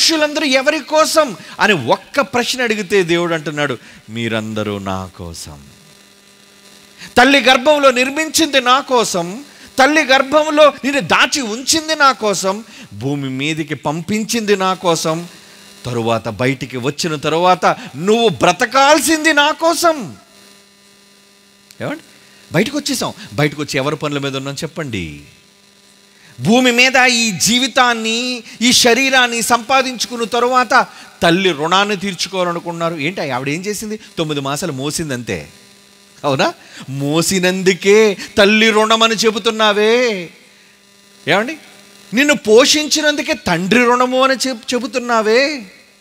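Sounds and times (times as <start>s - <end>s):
man's amplified voice: 0.0s - 5.7s, 7.0s - 15.3s, 15.9s - 20.2s, 21.8s - 25.4s, 26.4s - 35.5s, 36.2s - 40.4s, 41.3s - 45.8s
electrical mains hum: 0.0s - 46.0s.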